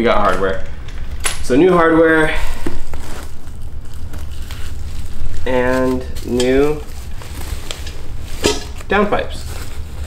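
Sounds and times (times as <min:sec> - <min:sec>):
bubble wrap crinkling: 0:02.4 - 0:10.0
cardboard rustling: 0:02.6 - 0:10.0.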